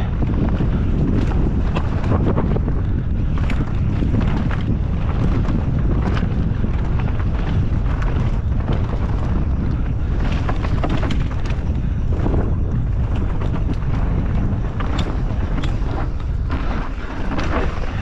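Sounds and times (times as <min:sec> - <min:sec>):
bike clicks and rattles: 0:00.0 - 0:18.0
tyres rumbling on loose stone: 0:00.0 - 0:18.0
wind buffeting microphone: 0:00.0 - 0:18.0.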